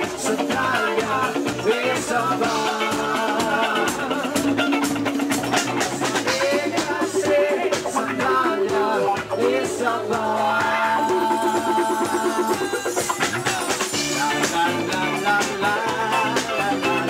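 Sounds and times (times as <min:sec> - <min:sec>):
drum kit beat: 0:00.0 - 0:17.0
live band playing disco-rock: 0:00.0 - 0:17.0
person singing: 0:00.0 - 0:17.0.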